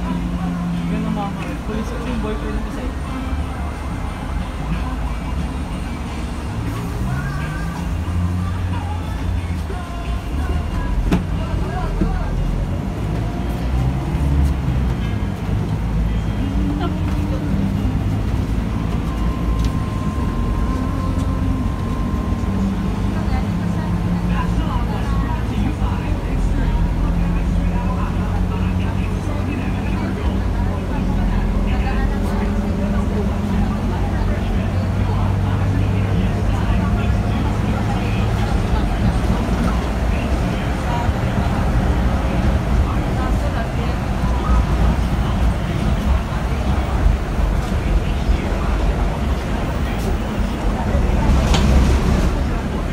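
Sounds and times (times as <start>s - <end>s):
bus engine and road drone: 0.0s - 52.9s
voices: 0.0s - 52.9s.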